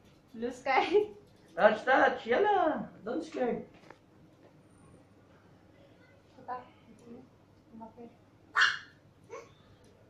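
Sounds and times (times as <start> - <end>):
dog barking: 8.6 - 9.0.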